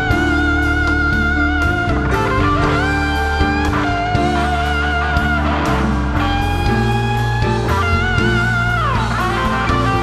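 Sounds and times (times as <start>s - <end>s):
bass: 0.0s - 10.0s
chords: 0.0s - 10.0s
smooth jazz lead instrument: 0.0s - 10.0s
steady drum beat: 0.0s - 10.0s.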